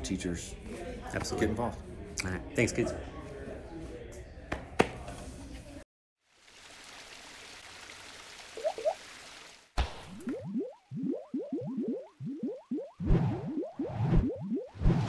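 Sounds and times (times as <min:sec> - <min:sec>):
short rising blips: 0:10.3 - 0:15.0.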